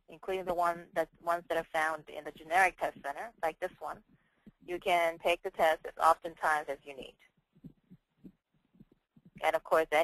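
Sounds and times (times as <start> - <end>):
faint low thumps: 7.4 - 9.6.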